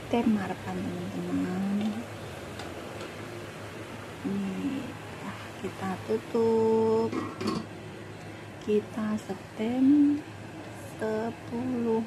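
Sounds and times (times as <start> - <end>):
water boiling in a wok: 0.0 - 8.7.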